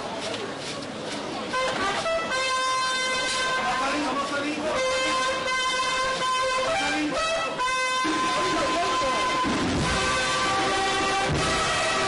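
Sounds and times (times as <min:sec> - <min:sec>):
crowd chatter: 0:00.0 - 0:12.0
brass instruments playing notes: 0:01.5 - 0:12.0.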